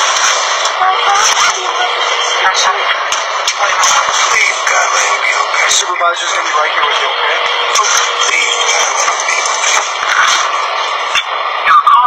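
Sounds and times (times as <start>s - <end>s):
muffled voices: 0.0s - 12.0s.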